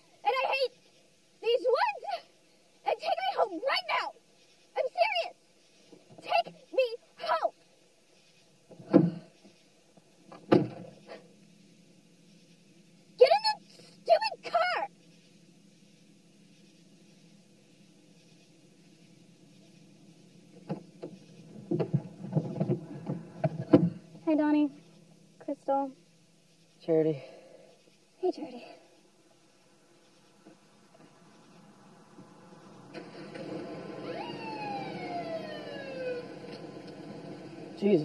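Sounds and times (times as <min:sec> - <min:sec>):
low steady hum: 0:00.0 - 0:38.0
knocks and thumps in a car: 0:10.3 - 0:11.0, 0:20.6 - 0:24.1
police car siren whoop: 0:33.2 - 0:36.9.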